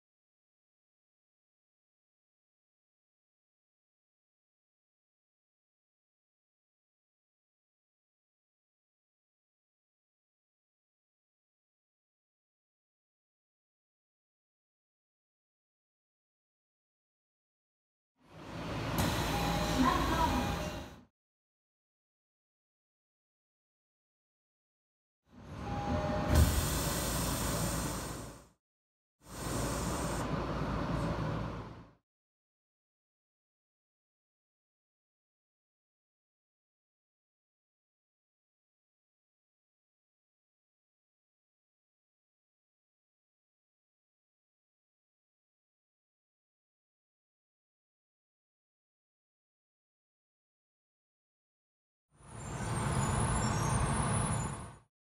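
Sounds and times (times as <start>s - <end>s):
subway car rumble: 18.2s - 21.0s, 25.3s - 28.5s, 29.3s - 32.0s, 52.2s - 54.8s.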